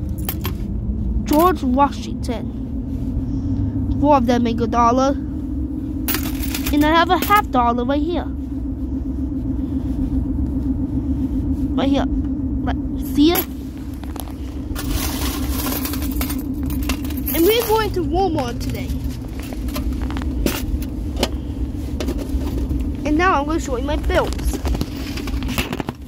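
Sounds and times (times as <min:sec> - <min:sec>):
car interior rumble and hum: 0:00.0 - 0:26.0.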